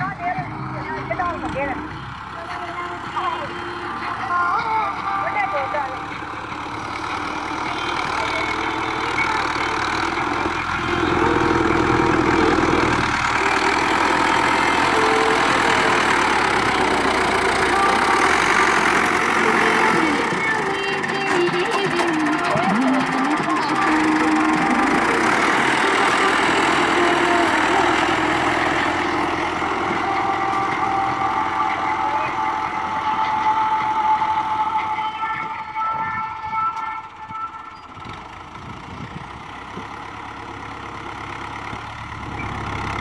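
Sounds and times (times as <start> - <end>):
tractor diesel engine under load: 0.0 - 43.0.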